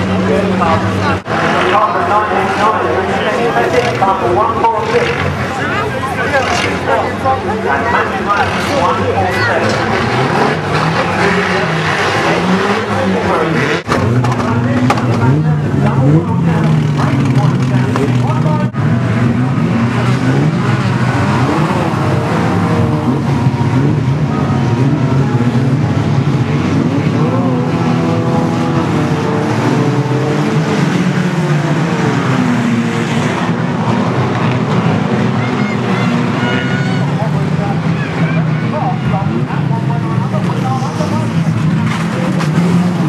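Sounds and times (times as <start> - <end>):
racing car engines revving: 0.0 - 43.0.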